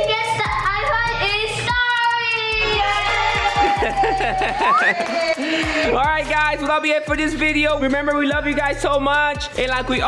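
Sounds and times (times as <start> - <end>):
child singing: 0.0 - 5.4.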